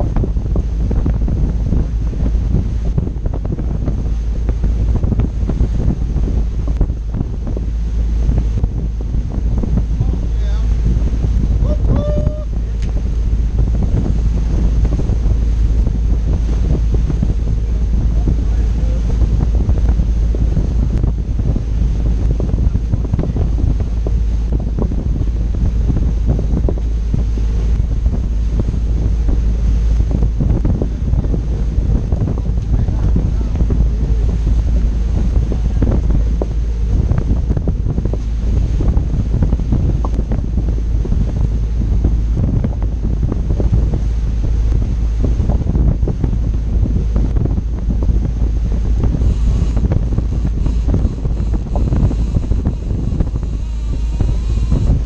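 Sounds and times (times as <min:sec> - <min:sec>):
water rushing from boat wake: 0:00.0 - 0:55.0
wind buffeting microphone: 0:00.0 - 0:55.0.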